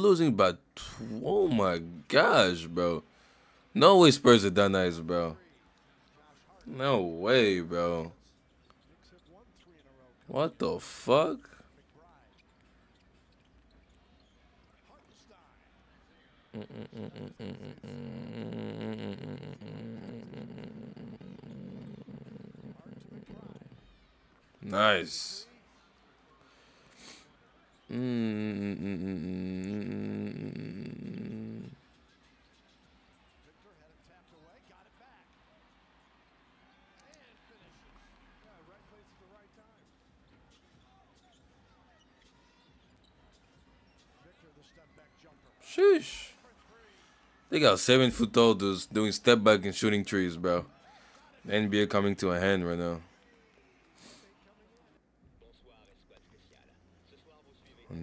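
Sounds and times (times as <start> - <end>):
commentator talking: 0.0 - 3.0, 3.8 - 5.4, 6.6 - 8.1, 10.3 - 11.6, 24.6 - 25.4, 45.6 - 46.4, 47.5 - 50.7, 51.5 - 53.0
man laughing: 16.5 - 23.7, 27.9 - 31.7.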